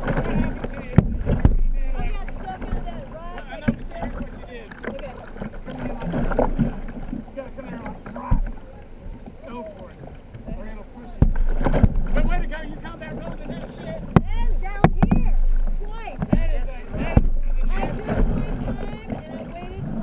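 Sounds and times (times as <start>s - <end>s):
paddle knocking against boat: 0.0s - 20.0s
paddle strokes in rushing water: 0.0s - 20.0s
wind buffeting microphone: 0.0s - 20.0s
indistinct voices: 12.1s - 20.0s.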